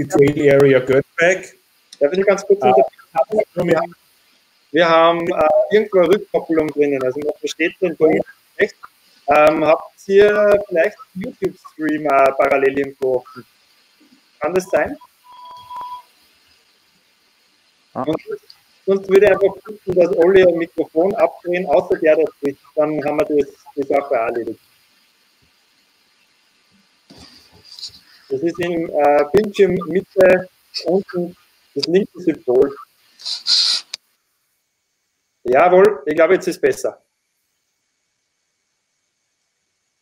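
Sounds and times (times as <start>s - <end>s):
brief hiss: 0.0s - 26.3s, 27.0s - 34.2s
electronic beep: 14.5s - 16.1s
faint clicks: 18.3s - 18.8s, 32.7s - 34.2s.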